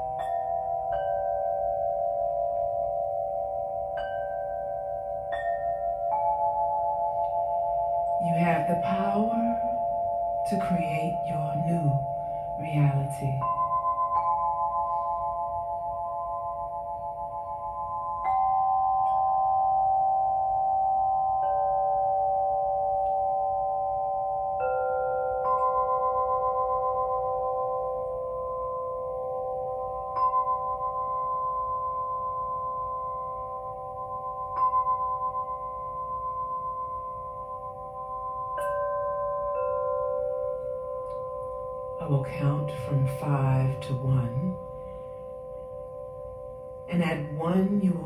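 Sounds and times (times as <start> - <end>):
crystal singing bowls ringing: 0.0 - 48.0.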